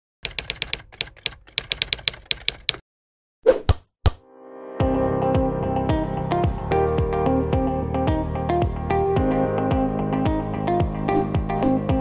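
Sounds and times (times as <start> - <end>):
typing key clicks: 0.2 - 2.8.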